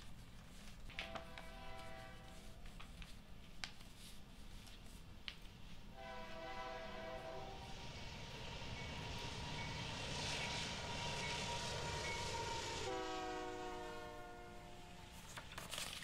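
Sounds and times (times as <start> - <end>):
train rumbling: 0.0 - 2.8, 5.5 - 15.6
train horn chord: 0.9 - 2.6, 6.0 - 7.9, 11.2 - 15.2.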